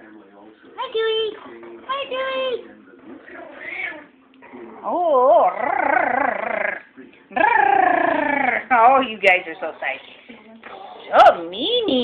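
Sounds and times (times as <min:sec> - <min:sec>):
puppies growling: 0:03.0 - 0:08.9.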